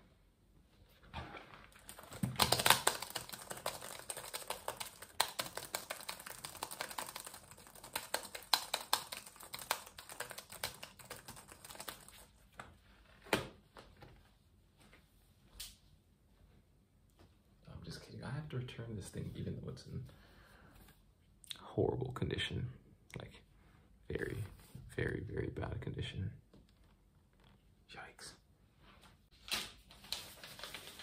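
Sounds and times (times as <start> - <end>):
fast typing on laptop keyboard: 1.8 - 12.4.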